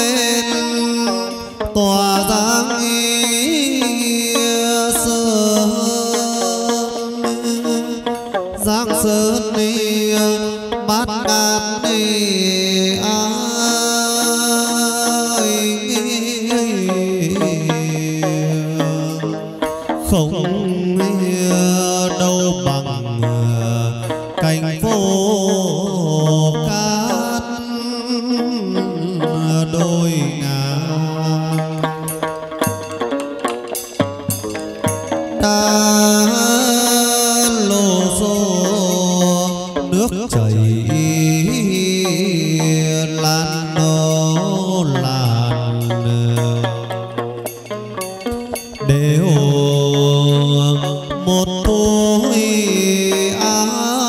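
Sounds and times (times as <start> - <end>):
moon lute plucking: 0.0 - 54.0
person singing long notes: 0.0 - 54.0.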